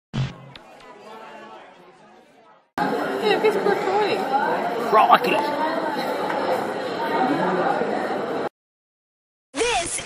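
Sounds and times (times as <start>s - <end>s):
faint background chatter: 0.4s - 8.5s
loud clipped voice: 4.9s - 5.5s.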